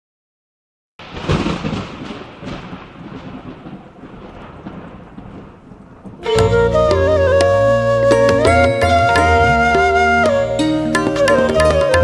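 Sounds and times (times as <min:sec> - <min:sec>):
thunder clap and rumble: 0:01.0 - 0:08.0.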